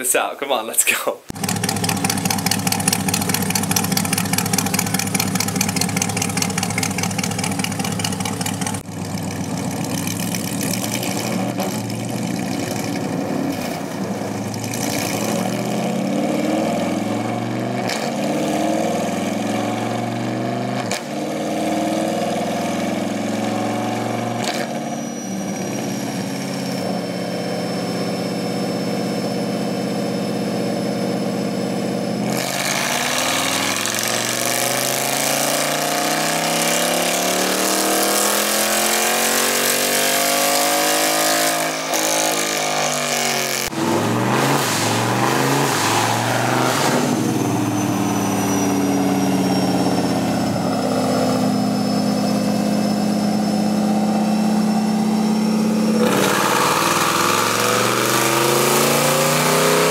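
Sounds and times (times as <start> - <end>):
car engine revving: 1.3 - 59.9.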